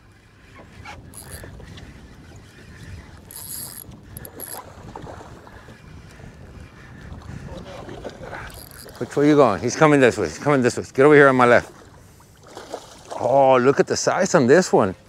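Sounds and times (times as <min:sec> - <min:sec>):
wind: 0:00.0 - 0:15.0
fishing reel cranking: 0:00.7 - 0:04.7, 0:08.5 - 0:09.0.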